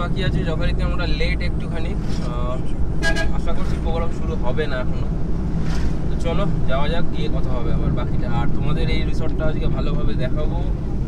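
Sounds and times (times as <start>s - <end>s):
people talking: 0.0s - 5.1s, 6.1s - 10.7s
car engine and road noise: 0.0s - 11.0s.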